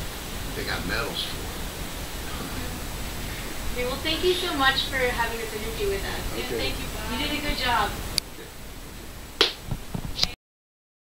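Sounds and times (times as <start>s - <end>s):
sharp snap: 9.4s - 10.4s.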